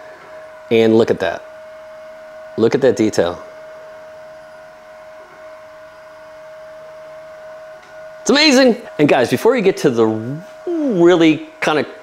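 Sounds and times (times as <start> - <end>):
steady tonal hum: 0.0 - 12.0.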